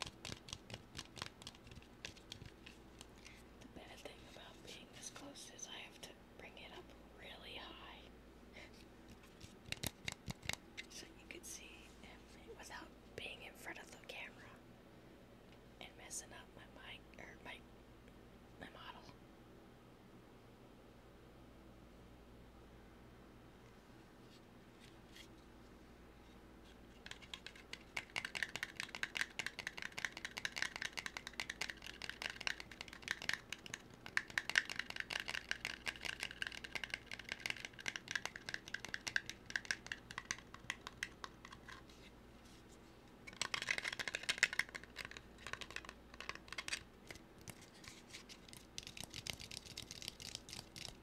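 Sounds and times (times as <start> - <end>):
close-up tapping and scratching: 0.0 - 5.3, 9.1 - 11.0, 26.9 - 42.6, 43.3 - 51.0.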